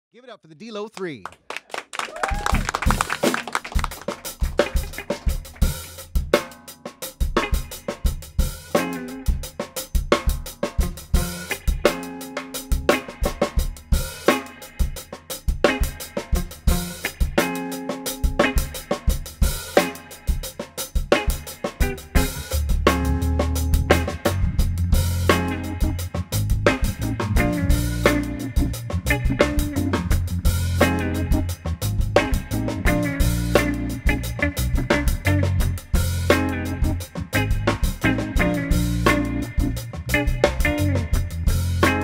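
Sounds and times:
drum kit beat: 0.2s - 42.0s
electric guitar: 2.4s - 6.1s, 7.2s - 42.0s
organ chords: 21.8s - 42.0s.

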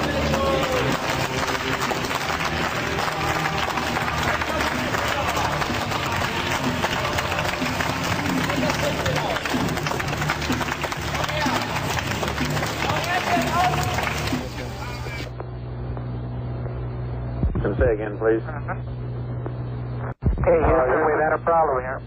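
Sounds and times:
crowd hiss: 0.0s - 15.4s
music: 0.0s - 15.4s
steady low hum: 0.8s - 22.0s
voices: 10.5s - 15.5s.

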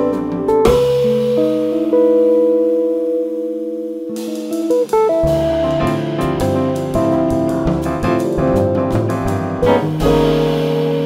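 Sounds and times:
jazz quartet playing: 0.0s - 2.2s, 4.2s - 11.0s
electric guitar chords: 0.0s - 11.0s.

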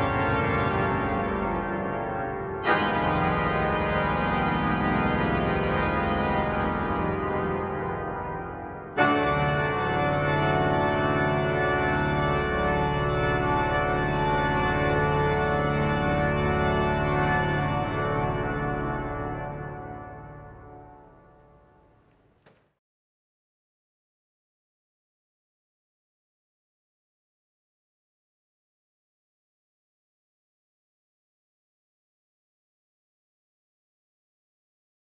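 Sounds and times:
pipe organ chords: 0.0s - 22.4s.

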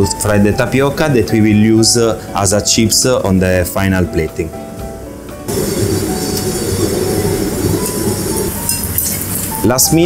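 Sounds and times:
background music: 0.0s - 10.0s
slices sizzling in hot oil: 5.5s - 9.6s.

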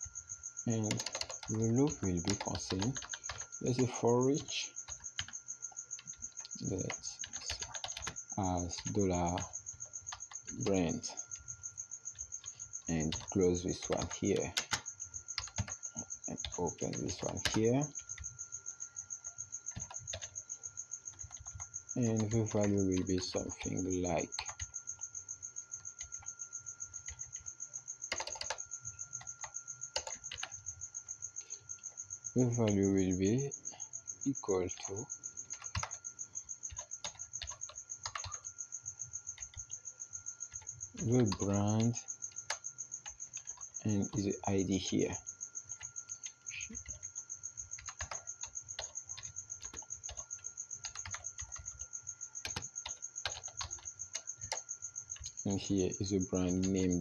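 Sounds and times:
typing on computer keyboard: 0.7s - 5.4s, 6.0s - 11.5s, 12.1s - 18.4s, 19.7s - 20.4s, 21.1s - 25.0s, 25.8s - 26.3s, 26.9s - 27.5s, 28.1s - 30.7s, 34.7s - 36.0s, 36.6s - 38.6s, 39.3s - 39.8s, 40.4s - 44.2s, 45.7s - 57.0s.

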